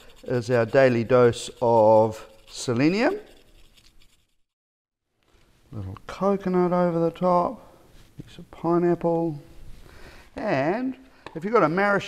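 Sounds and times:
nut scratching on a grater: 0.0 - 4.4.

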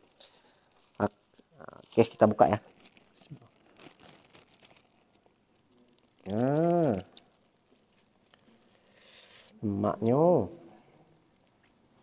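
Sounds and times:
plastic bag crinkling: 0.0 - 9.2.

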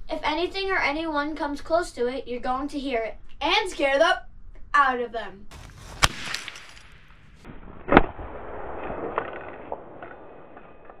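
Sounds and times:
sharp bang of blank round: 5.5 - 8.2.

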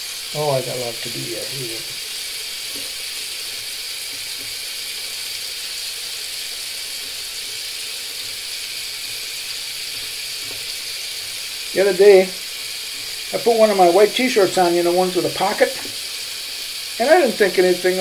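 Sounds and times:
water running from sink tap: 0.0 - 18.0.

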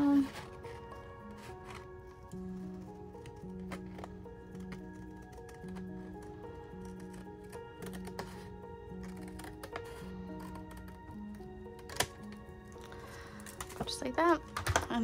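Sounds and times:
scissors cutting cardstock: 0.0 - 15.0
soft background music: 0.0 - 15.0.

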